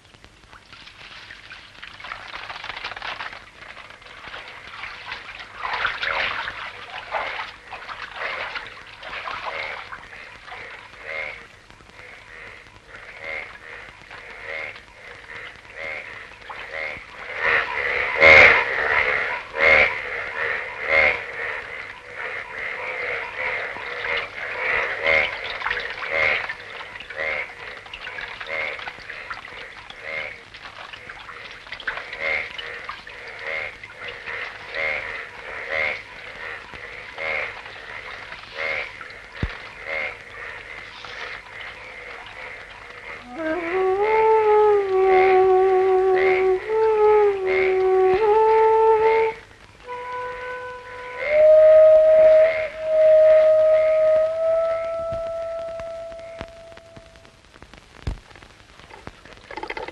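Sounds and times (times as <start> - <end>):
frogs croaking: 0.0 - 57.3.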